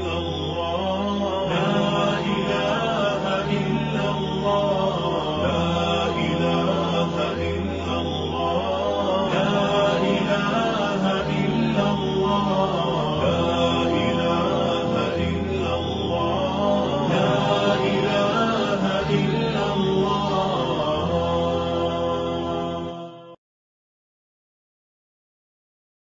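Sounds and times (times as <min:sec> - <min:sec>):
devotional chant music: 0:00.0 - 0:23.4.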